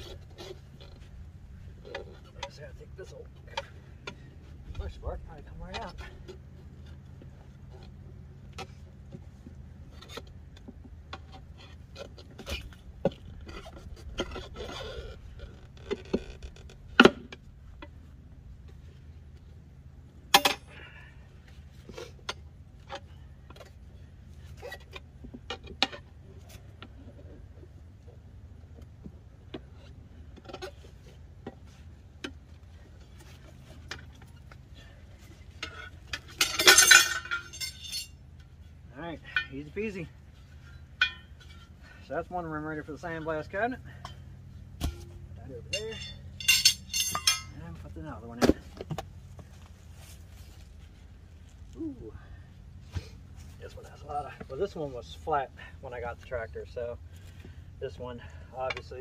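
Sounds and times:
tire irons scraping metal rim: 0.0 - 19.2, 29.5 - 59.0
sharp metal clanks: 20.3 - 20.8, 35.6 - 38.2, 40.6 - 41.8, 44.8 - 47.6
loud metallic rattle: 35.6 - 38.2, 44.8 - 47.6.

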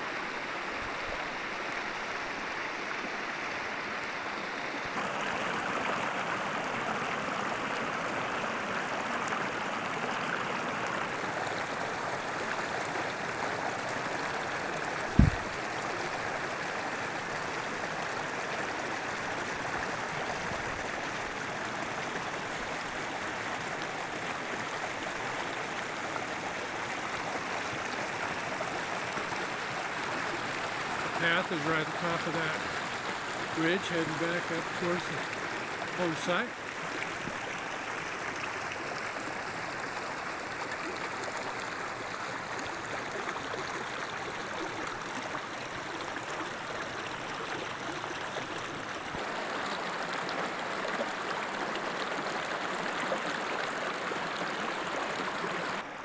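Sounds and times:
stream rushing: 0.0 - 56.0
low thump: 15.2 - 15.5.

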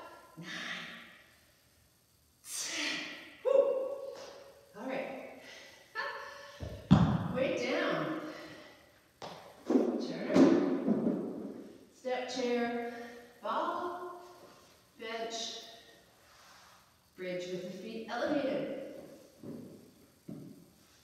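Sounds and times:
heavy thud on rubber floor: 6.6 - 7.4, 9.6 - 11.6.

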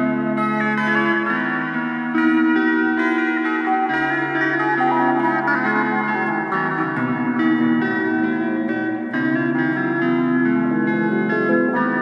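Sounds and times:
blues rock guitar with echo: 0.0 - 12.0.

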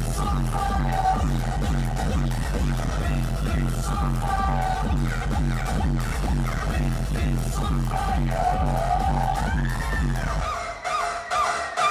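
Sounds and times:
electronic hip-hop music: 0.0 - 11.9.

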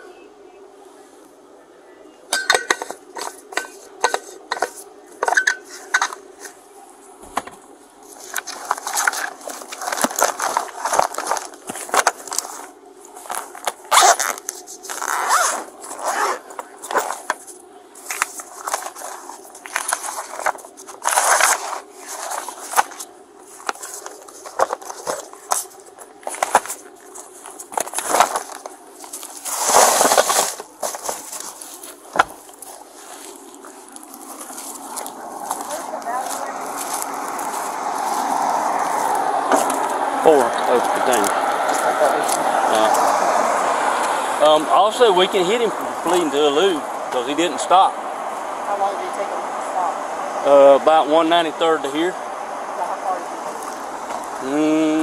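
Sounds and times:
steady low hum: 0.0 - 55.0
papers and plastic bags rustling: 7.2 - 43.2.

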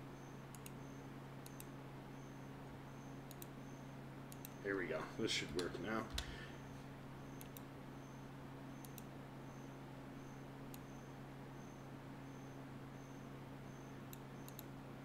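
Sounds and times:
low electrical hum: 0.0 - 15.0
computer mouse clicks: 0.5 - 0.8, 1.4 - 1.7, 3.3 - 3.5, 4.3 - 4.6, 7.4 - 7.7, 8.8 - 9.1, 10.7 - 10.9, 14.1 - 14.7.

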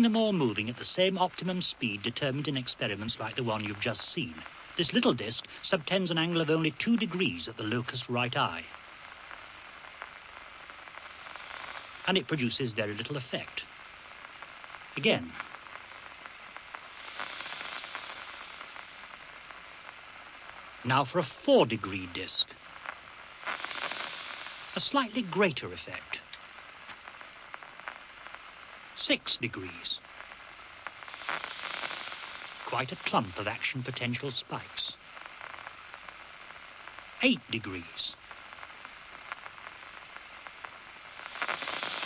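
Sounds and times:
soft crackles: 0.0 - 42.0
static-like hiss: 0.0 - 42.0
faint clicks: 17.5 - 20.6, 26.2 - 28.8.

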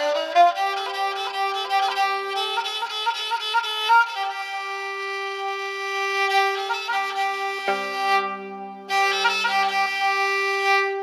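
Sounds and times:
bowed fiddle melody: 0.0 - 11.0.

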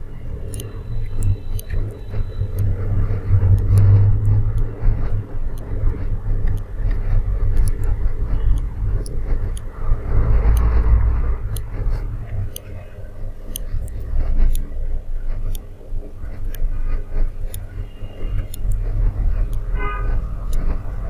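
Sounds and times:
faint scattered clicks: 0.3 - 21.0
deep low rumble: 2.2 - 15.5.

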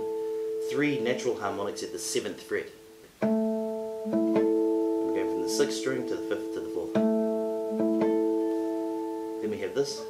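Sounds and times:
classical guitar harmonics: 0.0 - 10.0.

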